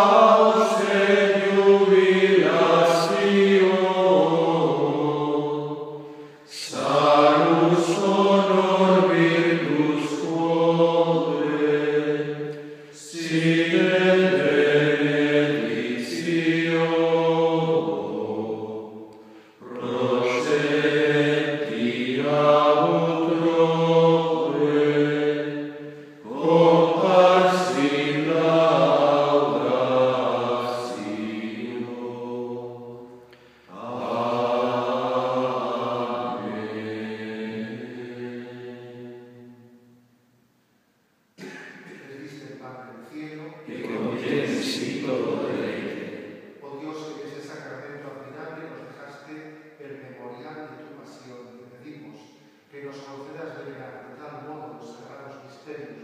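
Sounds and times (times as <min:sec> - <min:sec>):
men singing slow chant: 0:00.0 - 0:19.0, 0:19.6 - 0:39.5, 0:43.7 - 0:46.2.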